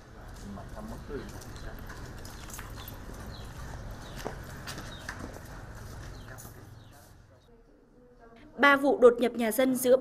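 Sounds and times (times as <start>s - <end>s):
footsteps on concrete: 0.1s - 7.3s.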